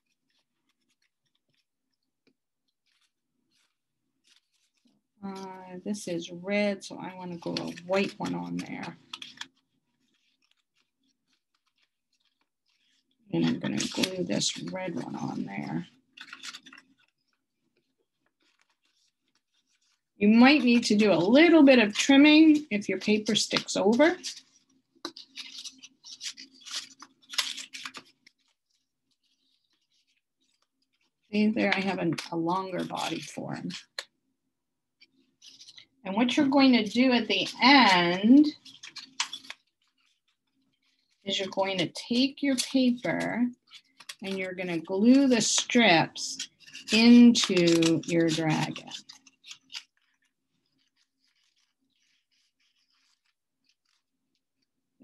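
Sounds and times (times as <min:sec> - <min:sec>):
paper strips rustling and crinkling: 0:00.0 - 0:34.2, 0:35.0 - 0:54.8.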